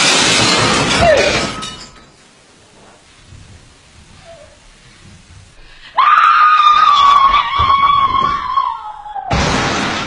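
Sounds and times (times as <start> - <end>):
loud high-pitched scream: 5.9 - 9.4.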